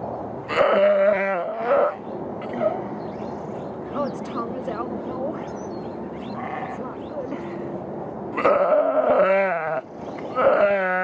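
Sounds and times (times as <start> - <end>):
sheep bleating loudly: 8.4 - 9.8, 10.4 - 11.0.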